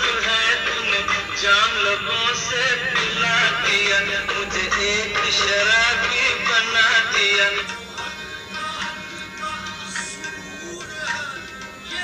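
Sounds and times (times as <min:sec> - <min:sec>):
instrumental backing music: 0:00.0 - 0:12.0
man singing: 0:00.0 - 0:12.0.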